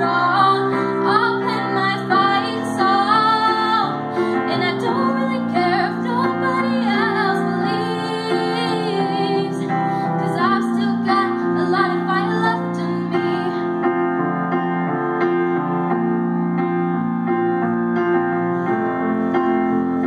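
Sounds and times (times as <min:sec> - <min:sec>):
girl singing: 0:00.0 - 0:13.7
piano through a speaker: 0:00.0 - 0:20.0.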